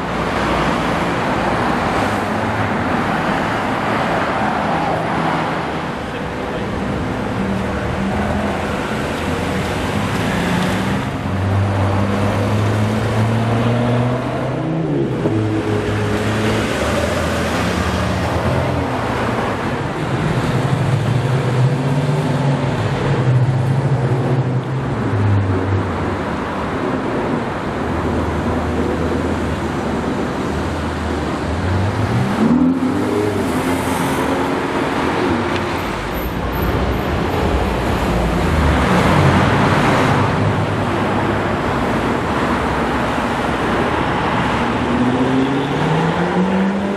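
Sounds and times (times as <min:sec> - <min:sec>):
car engines passing: 0:00.0 - 0:46.9
road noise: 0:00.0 - 0:46.9.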